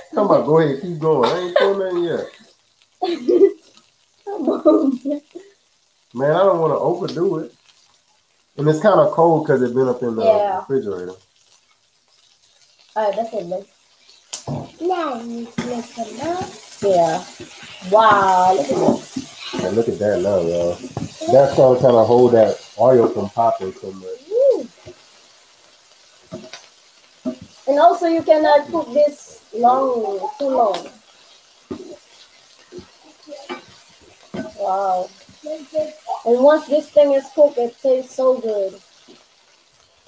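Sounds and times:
spatula stirring food: 0.0 - 40.0
vegetables sizzling in hot oil: 0.0 - 40.0
person speaking: 9.8 - 10.7, 17.8 - 24.7.

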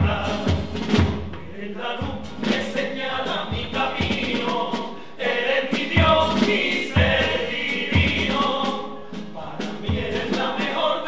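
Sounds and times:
chorus singing in unison: 0.0 - 11.0
steady drum beat: 0.0 - 11.0.

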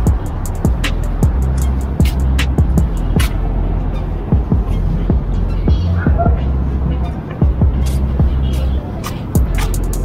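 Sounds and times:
music with steady beat: 0.0 - 10.0.

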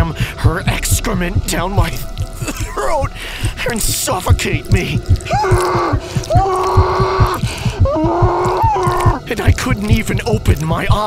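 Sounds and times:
background music with low beat: 0.0 - 11.0
person choking and gagging: 1.9 - 9.8.

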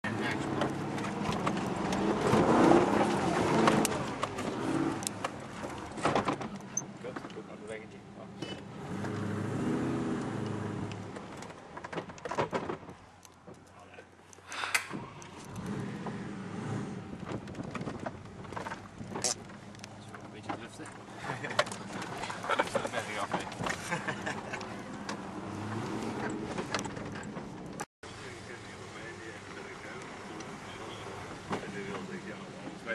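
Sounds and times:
vehicle knocks and rattles: 0.2 - 7.8, 11.0 - 13.7, 14.9 - 27.9.

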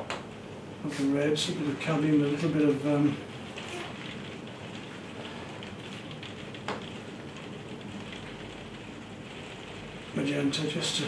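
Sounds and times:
rain on glass roof: 0.0 - 11.0.

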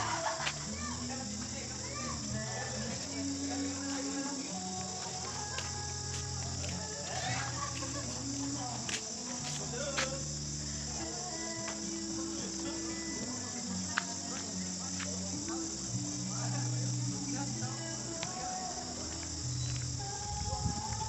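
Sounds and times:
faint voices: 0.0 - 21.0
high-pitched insect chorus: 0.0 - 21.0.

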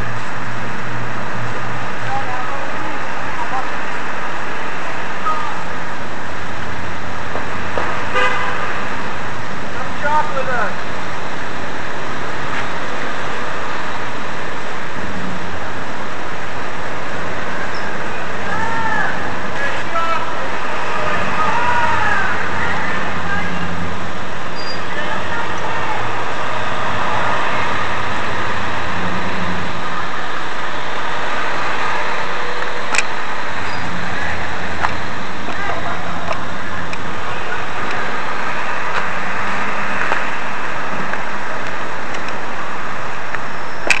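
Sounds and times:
road traffic rushing: 0.0 - 44.0.

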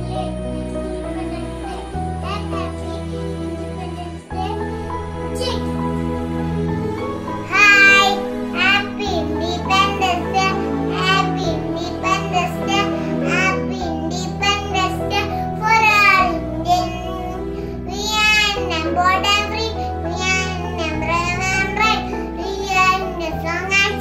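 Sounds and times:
young child singing: 0.0 - 6.3, 7.4 - 24.0
backing music: 0.0 - 24.0.

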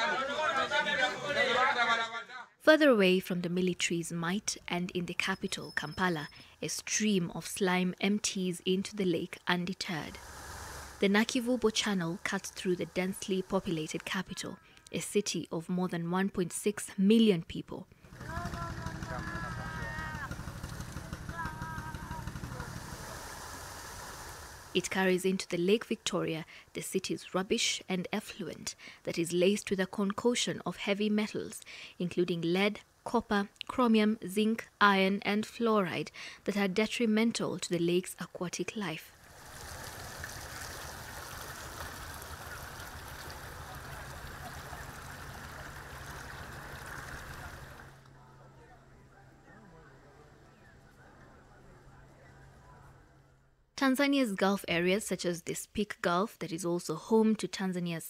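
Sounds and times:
water rushing down channel: 10.1 - 11.0, 20.7 - 24.8, 39.2 - 48.1
low engine rumble: 18.1 - 24.7, 39.3 - 48.6
faint voice: 18.2 - 20.3, 21.2 - 22.7.

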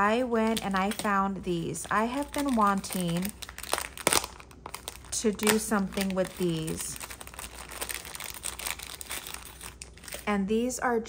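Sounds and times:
plastic bag crinkling: 0.2 - 10.3.

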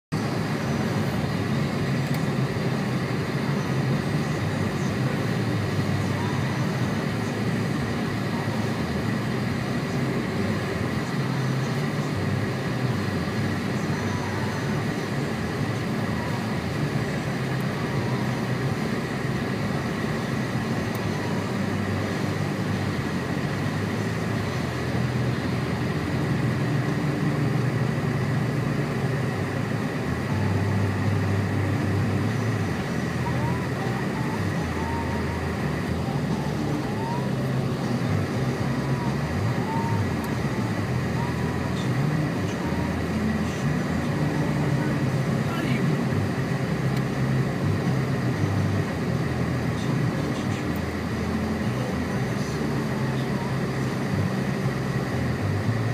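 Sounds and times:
car engine rumble: 0.0 - 55.9
thin steady whine: 0.1 - 55.9.

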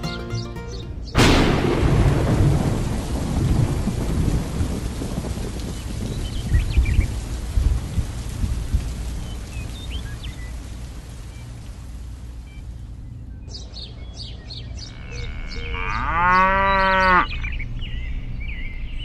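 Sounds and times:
steady rain: 0.0 - 16.1
thunderclap: 1.2 - 9.5
low thunder rumbling: 1.2 - 13.0.

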